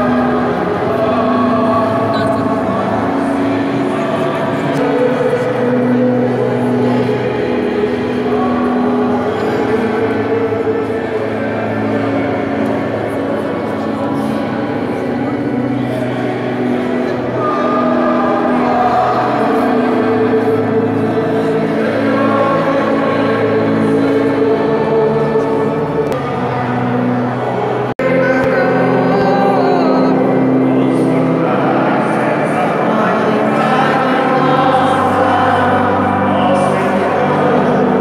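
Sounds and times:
crowd singing a hymn: 0:00.0 - 0:38.0
murmur of voices: 0:00.0 - 0:38.0.

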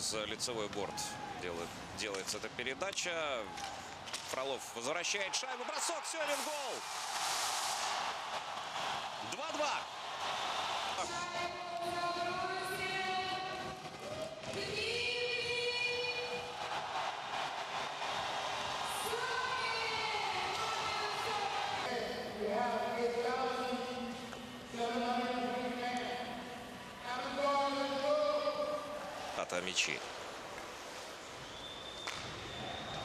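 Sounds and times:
arena crowd chanting: 0:14.6 - 0:24.2.

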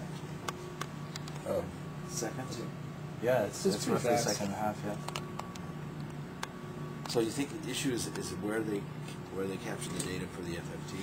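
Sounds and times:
faint whine: 0:00.0 - 0:11.0.

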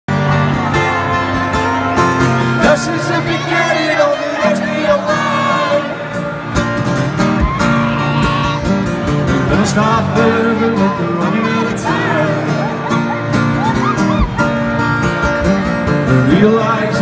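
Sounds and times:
acoustic guitar strumming: 0:00.1 - 0:17.0
person singing: 0:09.4 - 0:12.9.

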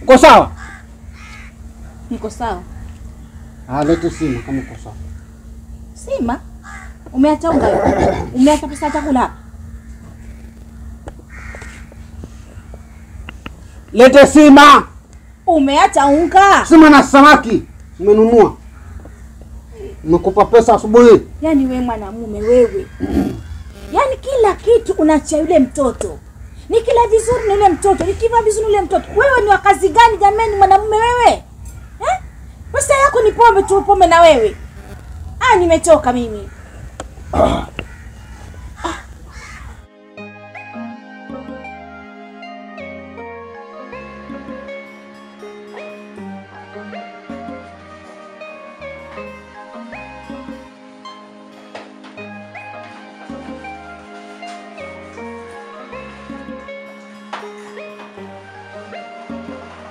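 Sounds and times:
faint steady hum: 0:00.0 - 0:39.9
low background rumble: 0:00.0 - 0:39.9
bird harsh call: 0:00.5 - 0:05.9, 0:06.6 - 0:13.8, 0:22.3 - 0:39.9
music: 0:15.5 - 0:36.4, 0:38.8 - 0:59.9.

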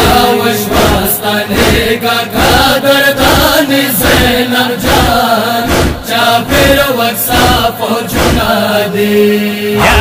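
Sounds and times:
man chanting a lament: 0:00.0 - 0:10.0
steady deep beat: 0:03.2 - 0:08.6.

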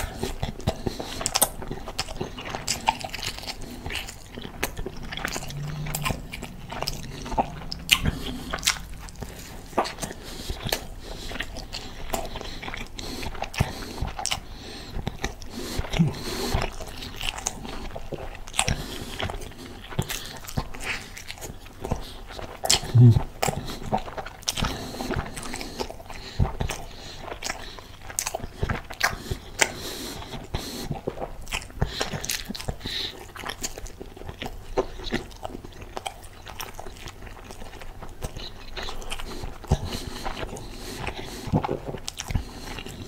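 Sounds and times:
chewing and biting food: 0:00.0 - 0:43.0
low vocal sound: 0:04.2 - 0:11.0, 0:15.8 - 0:16.5, 0:22.9 - 0:23.3.

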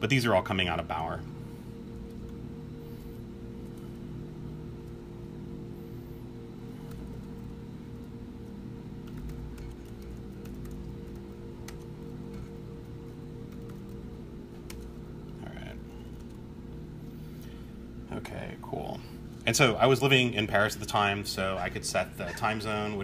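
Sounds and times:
steady low hum: 0:00.0 - 0:23.0
computer keyboard keystrokes: 0:06.8 - 0:08.1, 0:09.0 - 0:12.6, 0:13.4 - 0:14.0, 0:14.6 - 0:15.0, 0:16.0 - 0:16.4.

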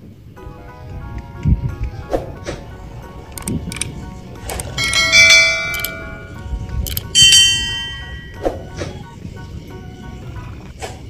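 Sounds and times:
ringing bell chime: 0:04.5 - 0:08.5.

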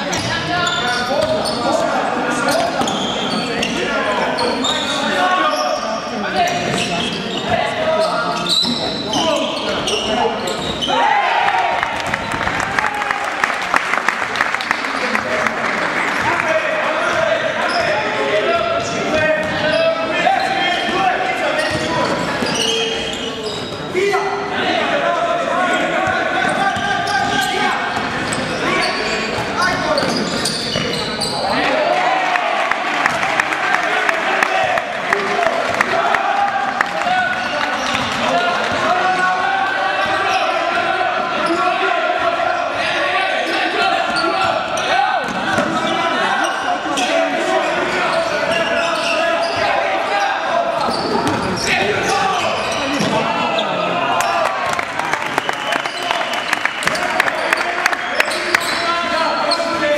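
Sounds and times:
basketball bouncing on court: 0:01.2 - 0:01.5, 0:45.2 - 0:45.9, 0:50.8 - 0:51.6
people shouting: 0:10.8 - 0:11.9.

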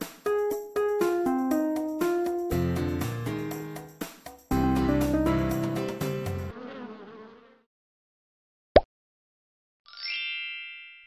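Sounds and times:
music: 0:00.0 - 0:06.5
cartoon bee buzzing: 0:05.5 - 0:07.7.

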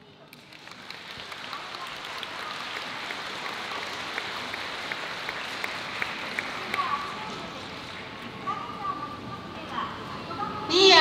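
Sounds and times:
audience applauding: 0:00.4 - 0:07.3.

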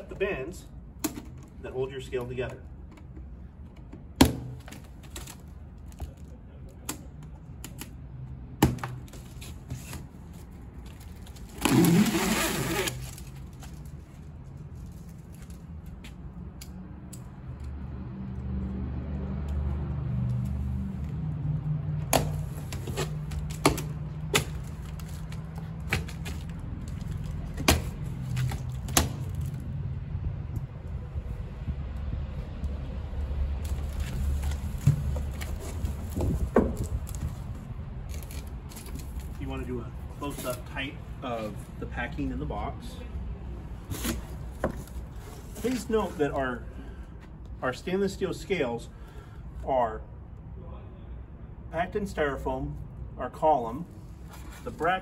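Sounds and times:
plastic straps pulled away: 0:10.9 - 0:14.0.

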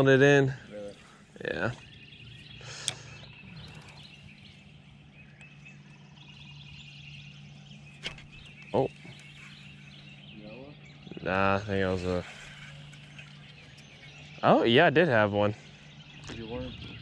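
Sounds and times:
low steady hum: 0:00.0 - 0:17.0
small birds chirping: 0:00.0 - 0:17.0.

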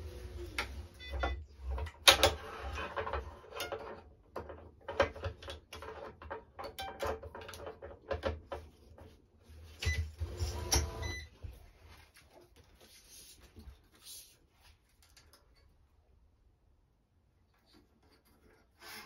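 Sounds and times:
clicks and rattles of stringing machine: 0:01.6 - 0:09.1.

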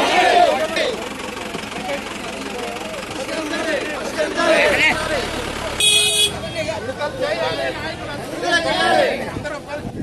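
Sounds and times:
jeep engine idling: 0:00.0 - 0:08.8
people talking: 0:00.0 - 0:10.0.

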